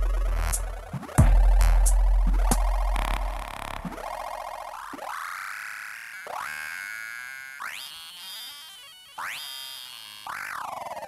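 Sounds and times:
synth sample swooping up: 0.0 - 4.9.

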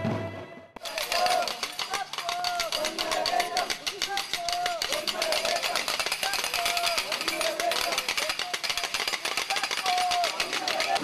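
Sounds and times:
voices calling out: 0.8 - 11.0.

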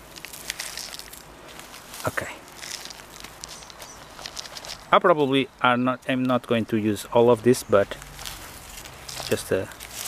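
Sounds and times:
dry leaf litter rustling: 0.0 - 10.0.

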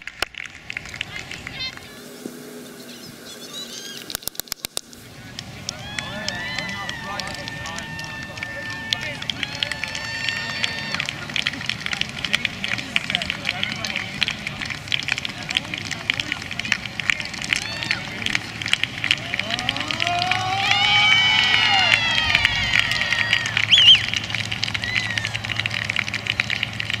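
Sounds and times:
crackle of clicks: 0.0 - 1.8, 4.0 - 5.8, 10.9 - 20.4
young men yelling a cheer: 5.4 - 11.4, 17.5 - 18.4, 19.1 - 26.0
high whoop: 5.7 - 11.3, 17.5 - 18.3, 19.2 - 26.1.

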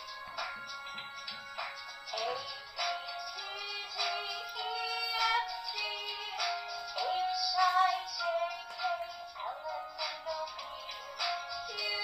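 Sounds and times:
electronic singing over backing tune: 0.0 - 12.0.

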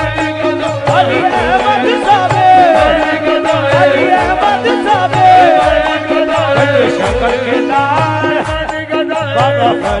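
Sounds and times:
hand drum beat: 0.0 - 10.0
harmonium chords: 0.0 - 10.0
lead voice singing: 0.0 - 10.0.

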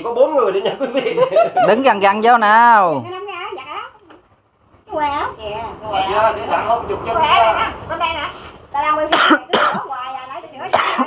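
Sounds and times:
woman's voice: 3.1 - 4.1, 4.9 - 6.1, 7.2 - 11.0
woman coughing: 9.1 - 10.0, 10.6 - 11.0.

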